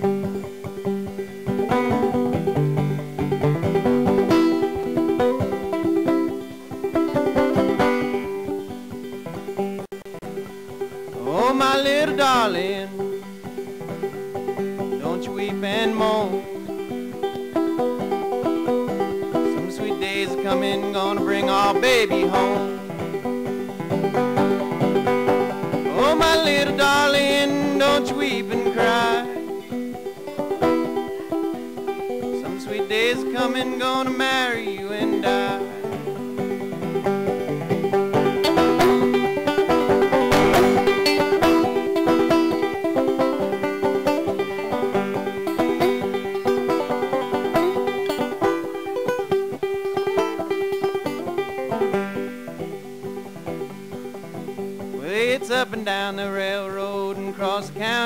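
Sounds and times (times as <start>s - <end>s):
banjo picking: 0.0s - 58.0s
wordless vocal phrases: 11.2s - 13.0s, 15.0s - 16.4s, 19.5s - 22.8s, 25.9s - 29.4s, 32.4s - 35.8s, 55.0s - 58.0s.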